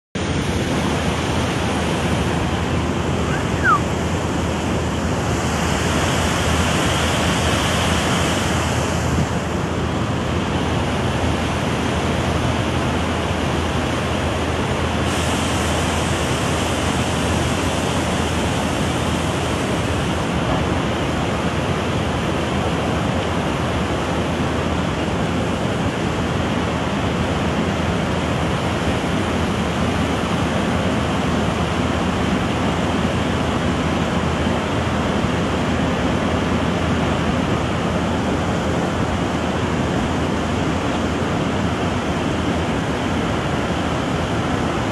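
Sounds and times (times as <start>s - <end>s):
fast-flowing river rushing: 0.2s - 44.9s.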